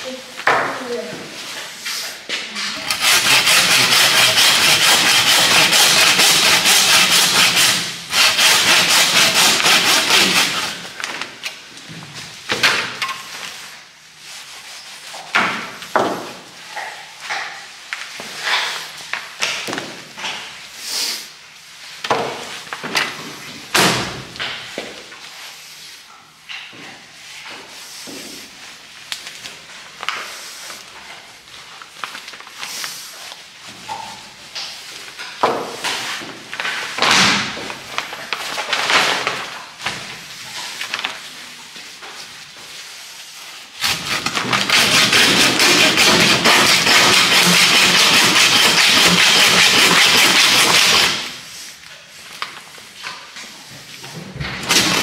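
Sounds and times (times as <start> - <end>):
saw cutting through carcass: 2.8 - 10.8, 43.8 - 51.3.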